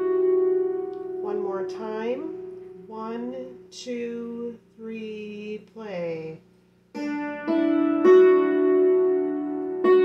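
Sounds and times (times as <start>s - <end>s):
person talking: 1.2s - 6.5s
hammered dulcimer notes ringing: 7.0s - 10.0s.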